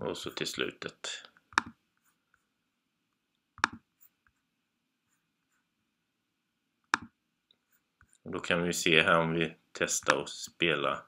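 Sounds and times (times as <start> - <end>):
faint room noise: 0.0 - 11.0
computer mouse click: 1.5 - 1.8, 3.6 - 3.8, 6.9 - 7.1.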